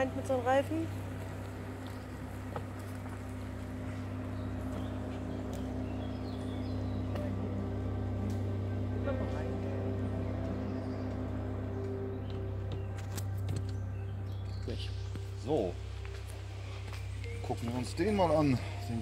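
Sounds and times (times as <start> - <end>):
car engine running: 0.0 - 19.0.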